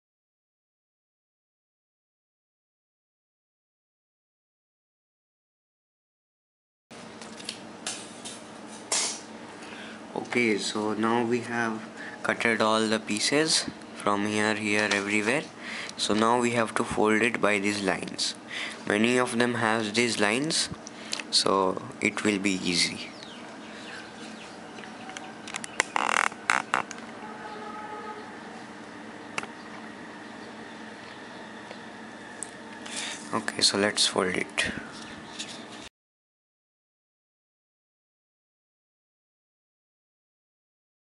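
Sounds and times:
faint steady hum: 0:07.0 - 0:35.9.

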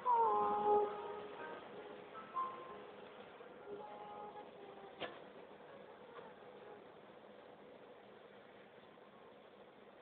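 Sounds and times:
faint backing music: 0:00.0 - 0:10.0.

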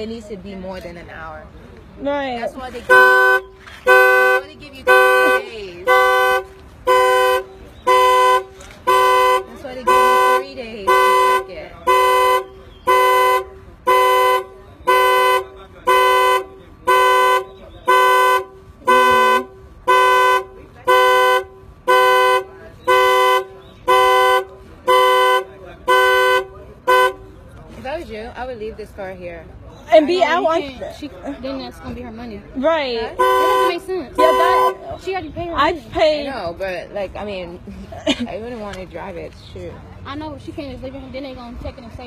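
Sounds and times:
two-tone car horn honking: 0:02.8 - 0:27.4, 0:33.0 - 0:34.8.

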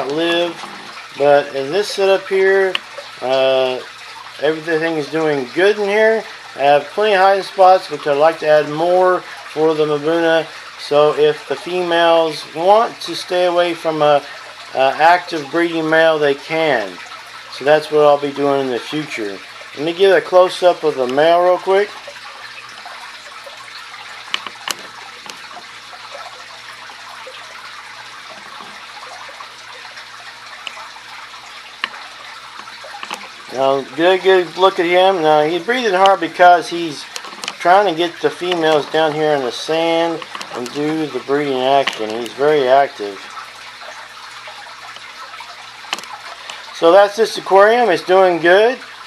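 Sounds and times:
aquarium water trickling: 0:00.0 - 0:49.0.

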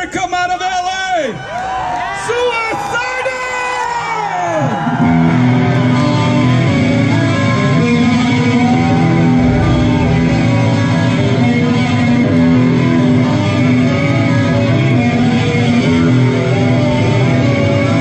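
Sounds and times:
live rock band playing: 0:05.0 - 0:18.0
lead guitar bending notes: 0:05.3 - 0:18.0.

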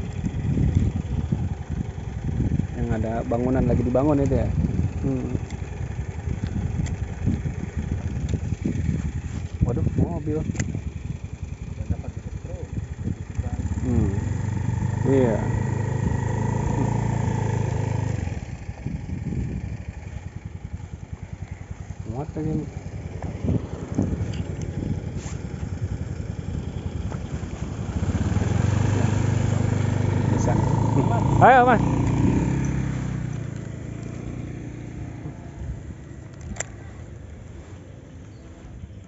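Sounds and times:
car engine running: 0:00.0 - 0:39.0.

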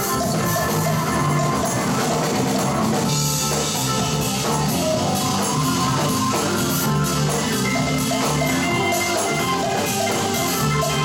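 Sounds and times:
drums: 0:00.0 - 0:11.0
electric bass: 0:00.0 - 0:11.0
electric keyboard: 0:00.0 - 0:11.0.

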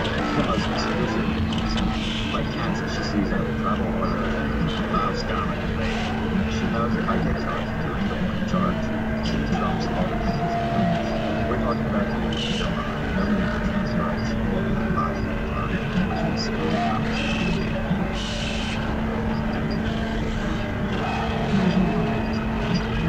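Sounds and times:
indistinct voice-like fragments: 0:00.0 - 0:23.0
noisy layered sound collage: 0:00.0 - 0:23.0
steady low hum: 0:00.0 - 0:23.0.

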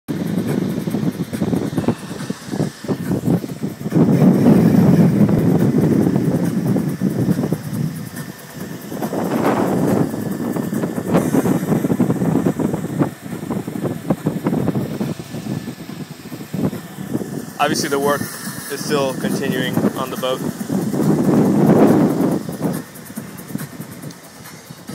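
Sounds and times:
boat engine rumbling: 0:00.1 - 0:24.9
wind buffeting microphone: 0:00.1 - 0:24.9.

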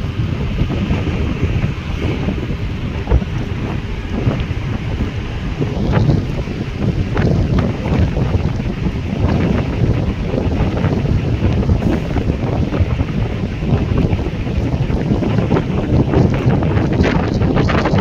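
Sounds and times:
strong wind buffeting microphone: 0:00.0 - 0:18.0.

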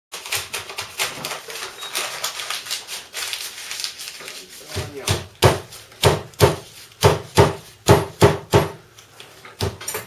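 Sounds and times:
paper rustling and crinkling: 0:00.1 - 0:06.0, 0:06.6 - 0:07.0.

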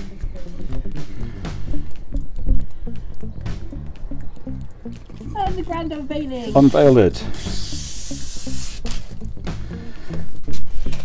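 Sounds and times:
background music quick notes: 0:00.0 - 0:10.2.

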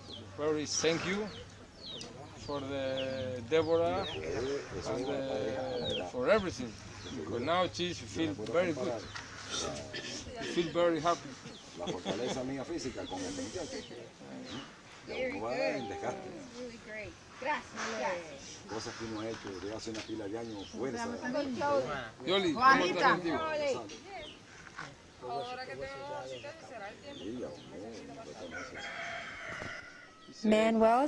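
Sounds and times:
low voices talking: 0:00.6 - 0:29.2
rooster crowing: 0:28.4 - 0:30.4.

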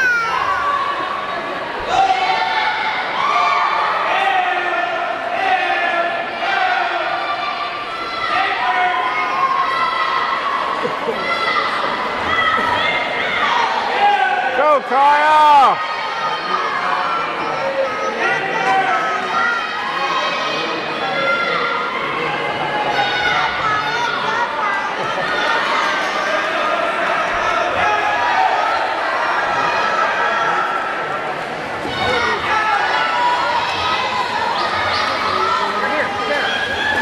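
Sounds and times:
crowd talking and calling out: 0:00.0 - 0:37.0.

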